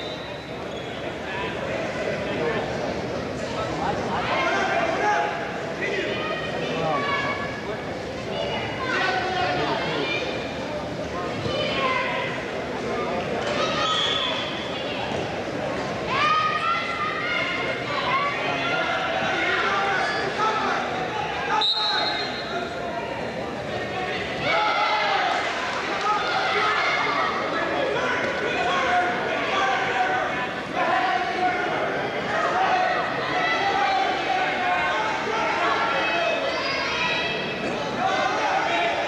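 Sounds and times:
crowd chatter: 0.0 - 39.0
voices shouting in echoing hall: 0.0 - 39.0
whistle blast: 21.6 - 22.5.

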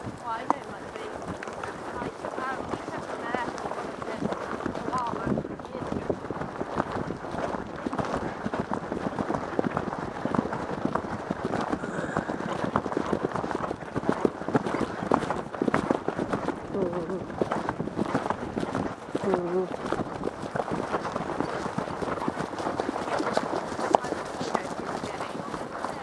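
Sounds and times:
horse hoofbeats on grass: 0.0 - 26.0.

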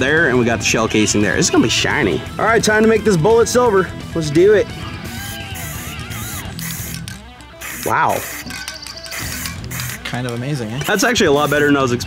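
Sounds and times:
guitar music: 2.0 - 12.0
aerosol spray can hissing: 5.2 - 10.1, 10.8 - 11.8.

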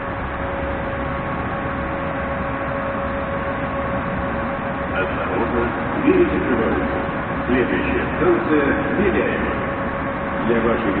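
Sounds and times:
thin steady whine: 0.0 - 11.0
train equipment hum and rumble: 0.0 - 11.0.

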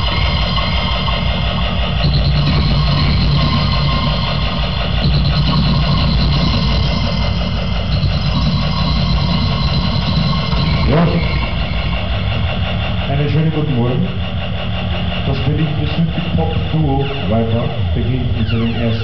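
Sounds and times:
loud droning live band: 0.0 - 14.4.

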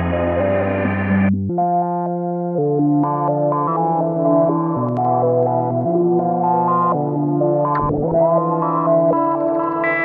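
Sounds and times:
synthesizer sustained notes with reverb: 0.0 - 10.0.

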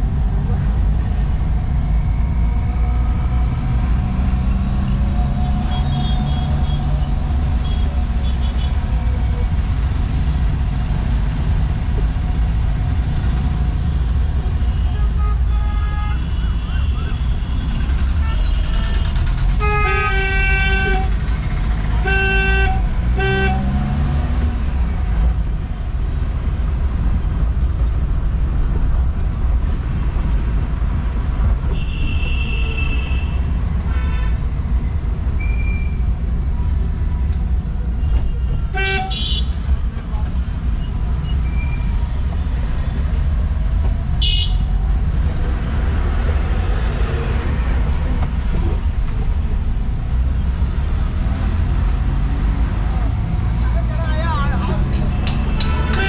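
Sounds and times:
car engine and road rumble: 0.0 - 56.0
vehicle horns honking: 5.6 - 8.8, 18.1 - 21.2, 21.9 - 23.9, 31.7 - 34.4, 38.4 - 39.6, 44.2 - 44.7, 55.1 - 56.0.

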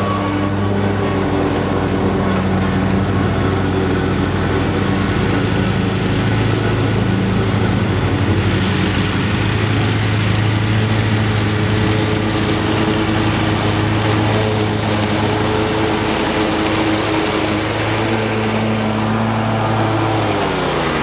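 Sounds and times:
mower engine cutting grass: 0.0 - 21.0.

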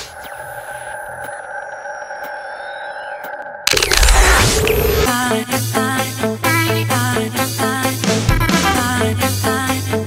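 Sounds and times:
electronic drone: 0.0 - 5.1.

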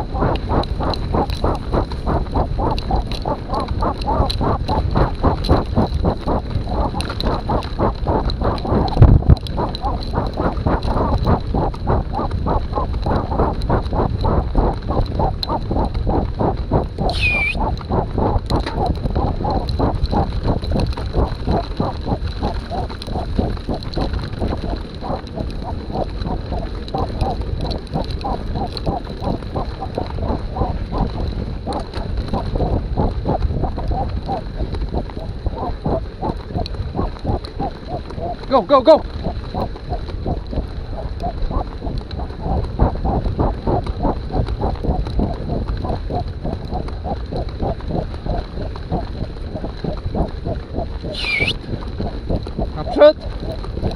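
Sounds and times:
bike tyres rumbling on dirt: 0.0 - 53.9
hard rhythmic breathing: 0.0 - 53.9
high falling squeak: 17.1 - 17.6, 51.2 - 51.5.

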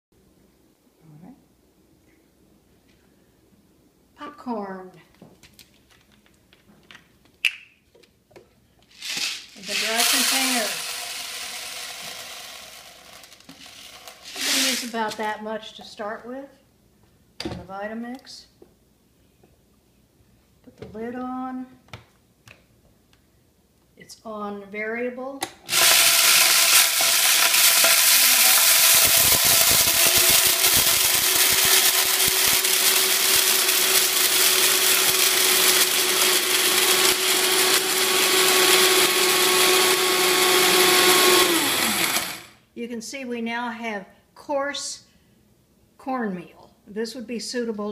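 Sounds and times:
popcorn kernels rattling into container: 8.9 - 15.2, 25.7 - 39.2
blender motor grinding: 9.0 - 15.0, 25.7 - 42.6.

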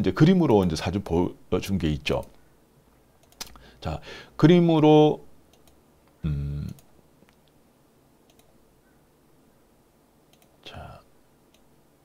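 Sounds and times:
computer mouse clicks: 3.2 - 3.6, 5.5 - 5.8, 6.7 - 7.6, 8.2 - 8.6, 10.3 - 10.6.

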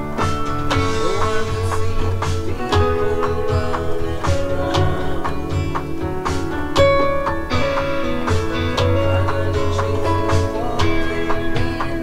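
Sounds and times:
bass: 0.0 - 12.0
drum beat: 0.0 - 12.0
electric guitar: 0.0 - 12.0
piano and pad chords: 0.0 - 12.0.

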